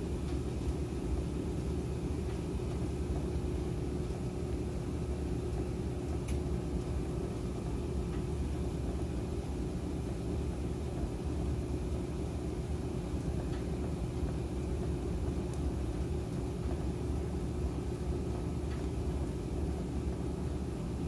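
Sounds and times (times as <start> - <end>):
washing machine spinning: 0.0 - 21.0.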